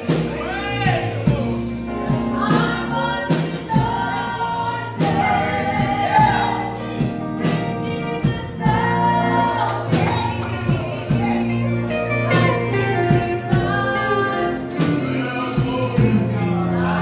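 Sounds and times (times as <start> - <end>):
church band playing: 0.0 - 17.0
man singing gospel: 11.4 - 17.0.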